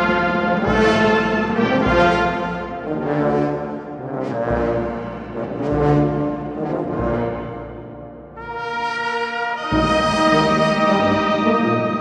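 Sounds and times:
brass band playing slow march: 0.0 - 12.0.

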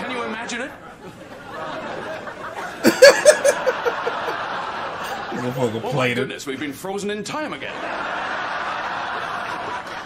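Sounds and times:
laughter in background: 0.9 - 5.6, 7.9 - 10.0
man laughing: 2.6 - 4.4.

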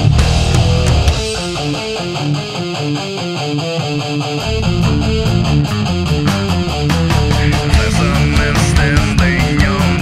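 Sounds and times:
guitar picking single notes: 0.0 - 10.0
metal band playing: 0.0 - 10.0
steady ticking beat: 4.5 - 10.0.

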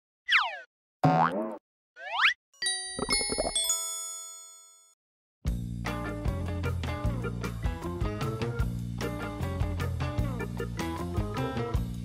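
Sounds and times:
springy pitched sound: 2.7 - 3.8.

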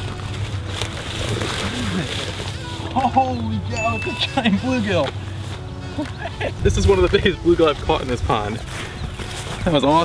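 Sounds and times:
fish splashing in water: 0.0 - 3.0.

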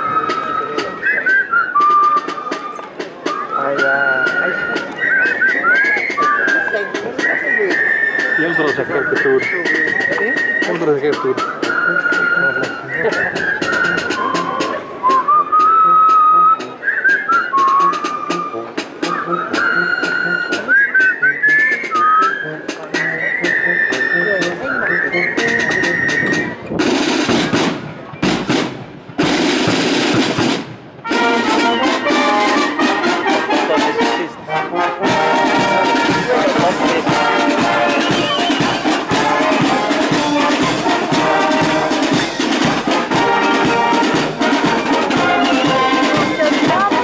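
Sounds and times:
marching band drum strokes: 0.0 - 47.0
person whistling: 0.1 - 18.5, 19.1 - 26.6, 37.8 - 38.8
low brass notes: 30.6 - 47.0.

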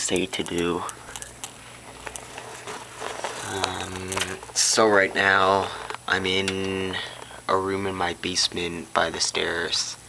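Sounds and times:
low steady hum: 0.0 - 10.0
camera handling rustling: 0.6 - 7.3.

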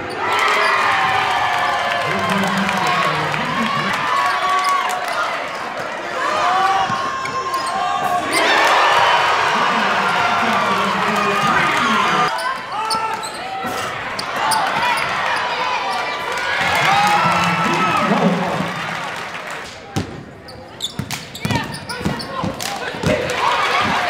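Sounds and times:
crowd voices: 0.0 - 24.0
sneakers squeaking: 2.9 - 16.8, 19.9 - 24.0.

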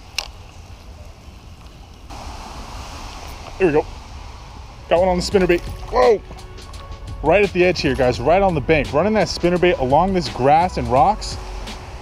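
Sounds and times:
outdoor hiss: 0.0 - 12.0
wind rumbling on microphone: 0.0 - 12.0.

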